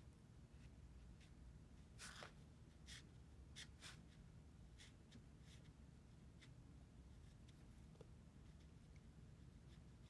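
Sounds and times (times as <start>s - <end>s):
paintbrush strokes on paper: 0.4s - 10.0s.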